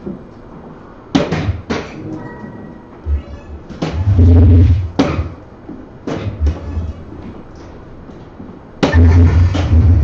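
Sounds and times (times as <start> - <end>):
electronic dartboard hit sound: 8.8 - 10.0.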